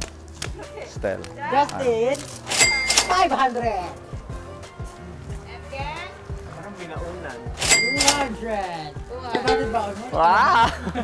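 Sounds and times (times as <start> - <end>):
music with steady beat: 0.0 - 11.0
bright bell-like ding: 2.6 - 3.3, 7.6 - 8.3.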